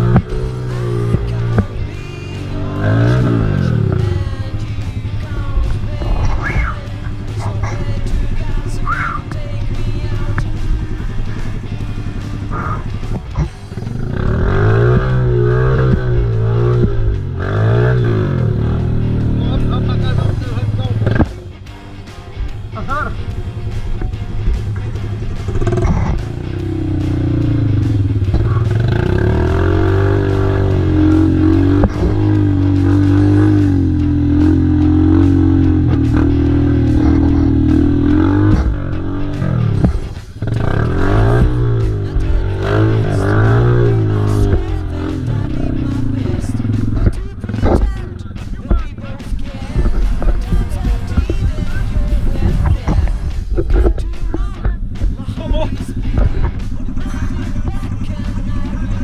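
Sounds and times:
background music: 0:00.0 - 0:59.0
quad bike engine revving: 0:00.0 - 0:59.0.

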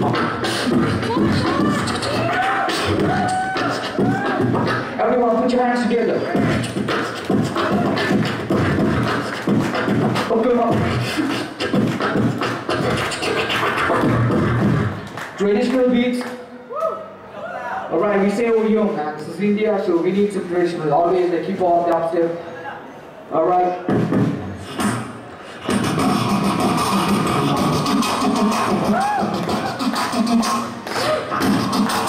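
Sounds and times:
low vocal bass tones: 0:00.0 - 0:05.4, 0:06.1 - 0:13.1
beatboxing percussive mouth sounds: 0:00.0 - 0:15.9, 0:23.8 - 0:32.0.

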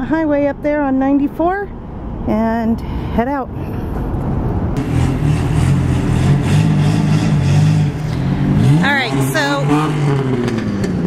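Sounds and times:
vehicle engine running: 0:04.8 - 0:11.0.

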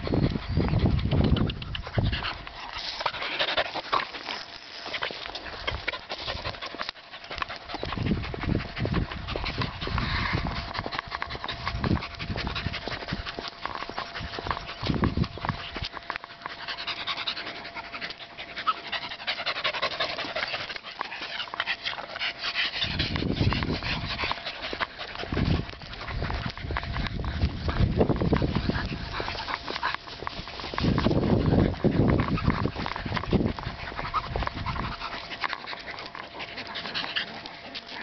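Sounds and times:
dog panting: 0:00.0 - 0:38.0.

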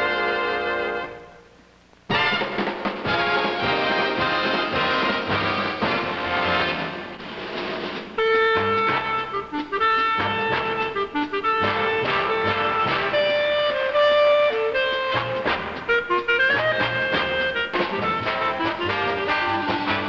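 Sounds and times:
big band accompaniment: 0:00.0 - 0:01.4, 0:02.1 - 0:20.0
clarinet swing melody: 0:00.0 - 0:07.0, 0:08.2 - 0:20.0.

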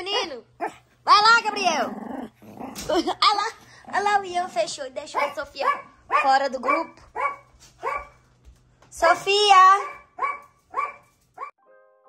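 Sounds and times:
small dog barking: 0:05.2 - 0:08.2, 0:09.8 - 0:11.5
piano music: 0:11.6 - 0:12.0.

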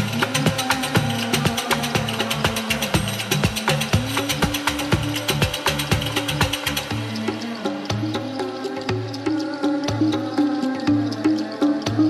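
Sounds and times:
electronic house music: 0:00.0 - 0:12.0.

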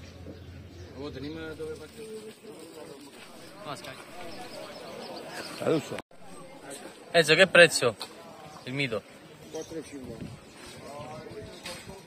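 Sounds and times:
indistinct voices: 0:01.1 - 0:12.0.

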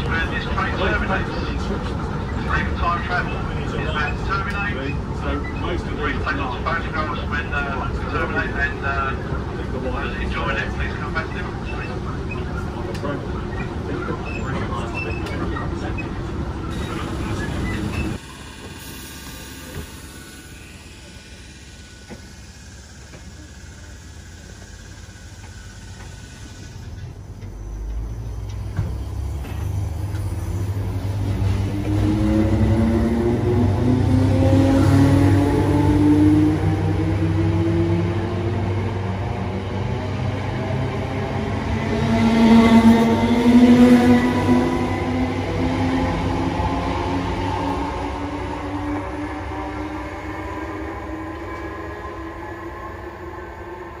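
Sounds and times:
wheels rumbling on rail: 0:00.0 - 0:54.0.

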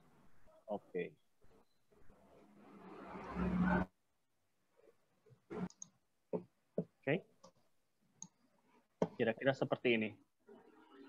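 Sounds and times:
computer mouse clicks: 0:05.6 - 0:06.0.

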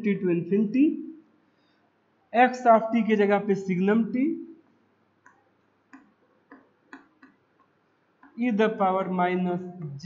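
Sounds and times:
person speaking: 0:00.0 - 0:01.0, 0:02.4 - 0:04.4, 0:08.3 - 0:10.0.

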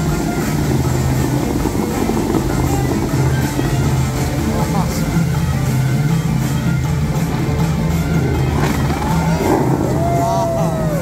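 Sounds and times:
fountain water jets spraying: 0:00.0 - 0:11.0
music over loudspeakers: 0:00.0 - 0:11.0.

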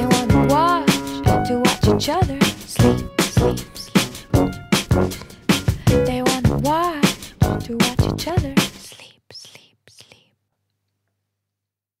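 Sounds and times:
woman speaking softly: 0:08.0 - 0:10.3.

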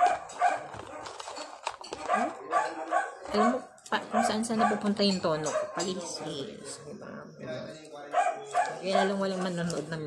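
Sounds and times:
dog barking: 0:00.0 - 0:01.1, 0:02.0 - 0:06.3, 0:08.1 - 0:08.9.

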